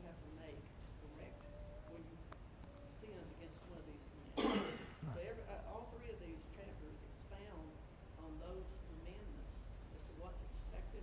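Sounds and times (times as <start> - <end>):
person coughing: 4.4 - 5.2.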